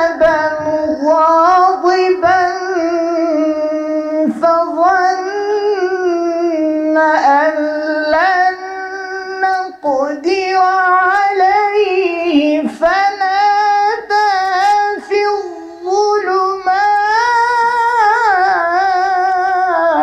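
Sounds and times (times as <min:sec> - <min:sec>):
man chanting melodically: 0:00.0 - 0:20.0.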